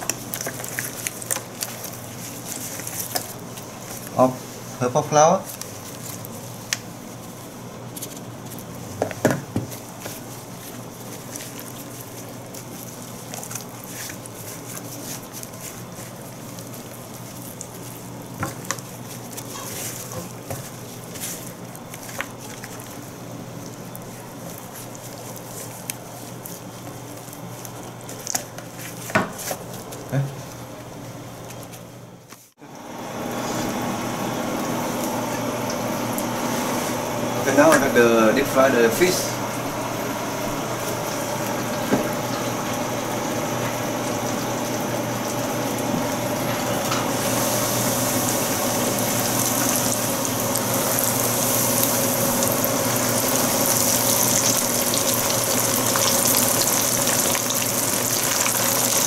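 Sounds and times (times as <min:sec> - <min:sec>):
gloved hands rustling: 0:00.0 - 0:04.7, 0:09.7 - 0:30.1
steady background hum: 0:00.0 - 0:59.0.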